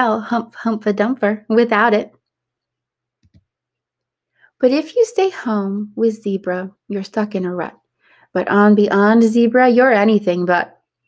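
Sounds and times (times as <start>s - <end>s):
computer mouse clicks: 2.1s - 3.6s.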